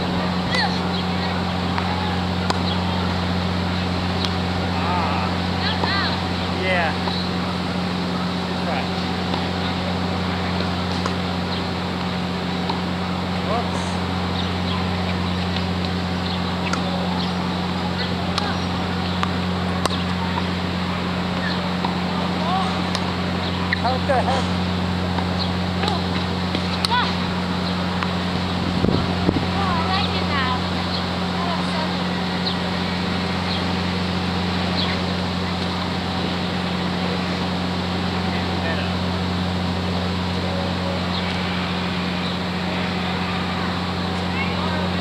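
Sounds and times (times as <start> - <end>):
steady low hum: 0.0 - 45.0.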